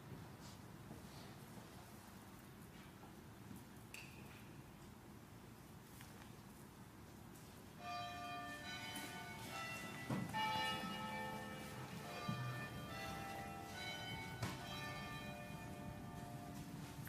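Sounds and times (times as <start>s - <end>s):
church bells ringing: 7.8s - 17.0s.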